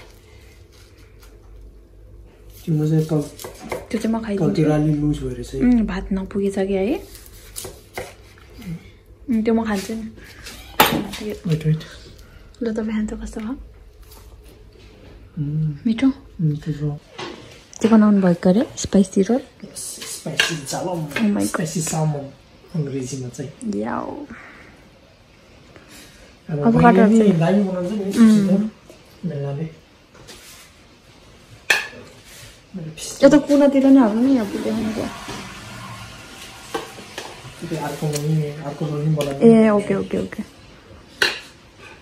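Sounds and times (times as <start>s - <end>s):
faint room noise: 0.0s - 42.0s.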